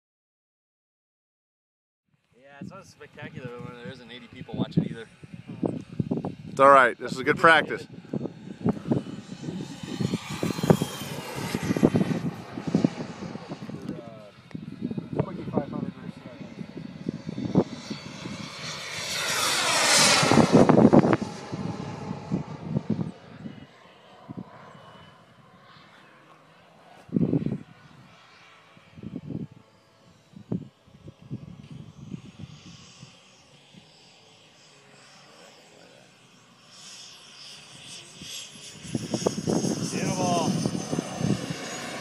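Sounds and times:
jet turbine engine whining: 2.6 - 42.0.

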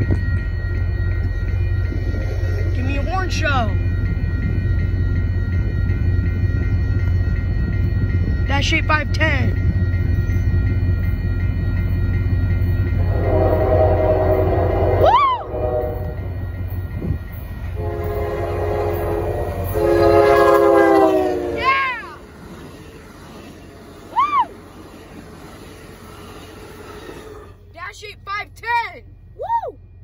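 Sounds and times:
train rumble: 0.0 - 30.0
locomotive air horn blasts: 13.0 - 16.2, 17.8 - 21.6.

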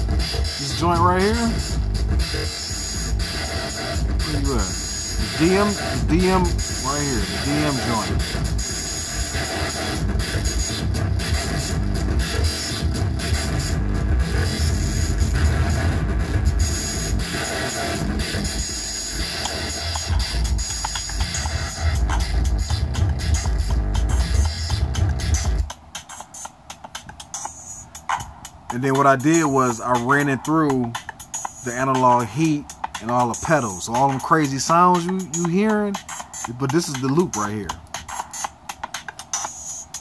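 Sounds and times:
distorted electronic drum loop: 0.0 - 40.0.

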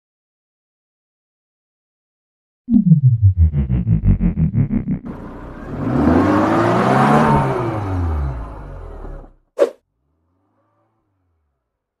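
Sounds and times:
car engine revving: 3.2 - 9.4.

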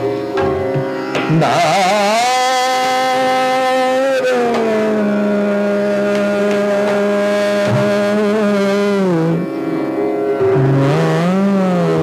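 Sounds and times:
tanpura drone: 0.0 - 12.0
man singing long vowel: 1.3 - 9.5, 10.6 - 12.0.

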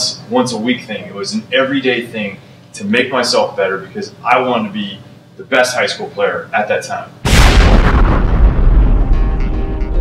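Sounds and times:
cinematic boom with rumbling tail: 7.3 - 9.9.

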